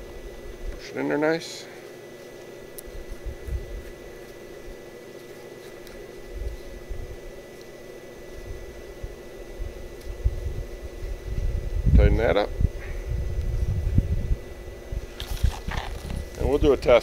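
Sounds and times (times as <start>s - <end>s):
machine hum: 0.0s - 17.0s
thin high whine: 0.0s - 17.0s.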